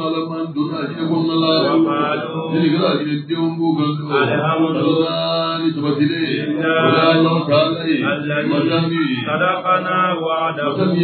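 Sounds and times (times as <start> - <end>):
person chanting through microphone: 0.0 - 11.0.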